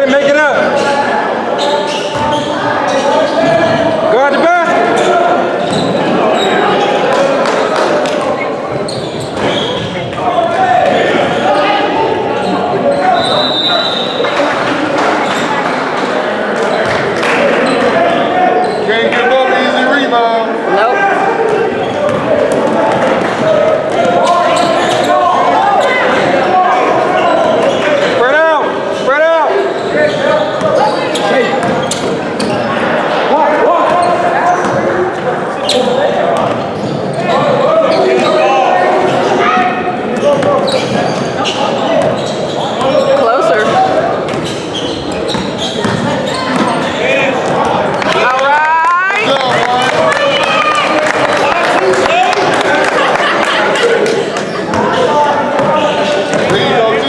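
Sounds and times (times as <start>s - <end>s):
spectators talking and shouting: 0.0s - 57.0s.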